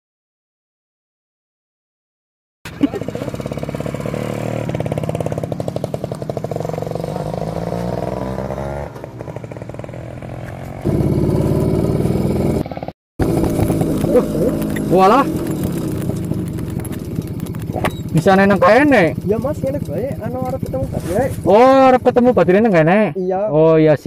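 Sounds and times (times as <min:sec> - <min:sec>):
motorcycle engine running: 0:02.7 - 0:23.1.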